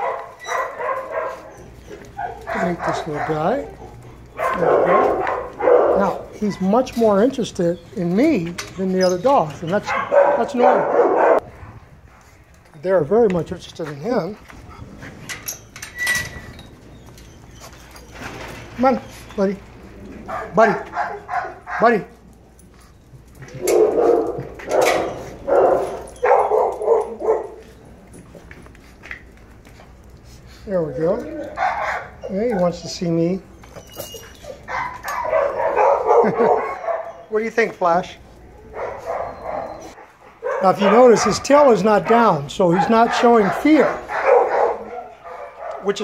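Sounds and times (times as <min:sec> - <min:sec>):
dog barking: 0:00.0 - 0:01.5, 0:02.2 - 0:06.6, 0:09.8 - 0:11.4, 0:20.3 - 0:22.1, 0:23.6 - 0:27.7, 0:31.5 - 0:32.8, 0:34.6 - 0:37.2, 0:38.6 - 0:46.0.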